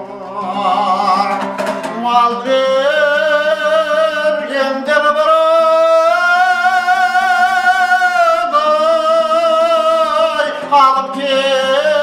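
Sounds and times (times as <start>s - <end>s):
plucked lute accompaniment: 0.0s - 4.9s, 9.3s - 12.0s
man singing with vibrato: 0.0s - 12.0s.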